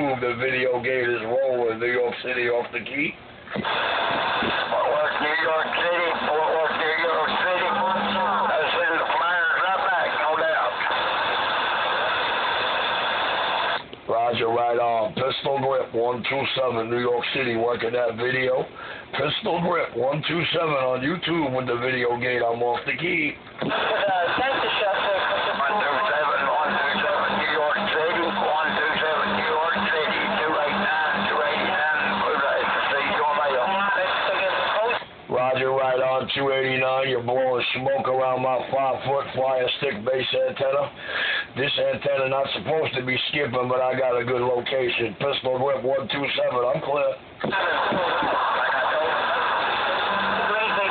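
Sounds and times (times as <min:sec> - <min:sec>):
radio static hiss: 0:00.0 - 0:50.9
distorted radio voices: 0:03.5 - 0:14.2, 0:21.0 - 0:41.8, 0:46.4 - 0:50.9.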